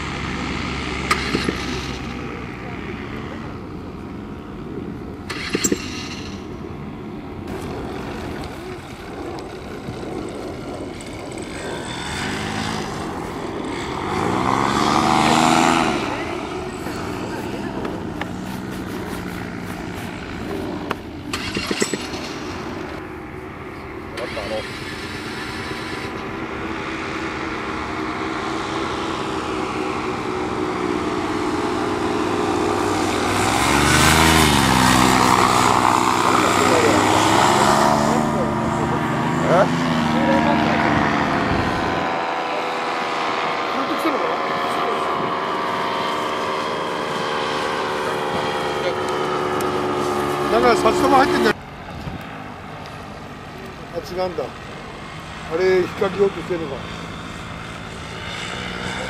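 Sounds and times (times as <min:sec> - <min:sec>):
paramotor engines flying past: 0:00.0 - 0:59.0.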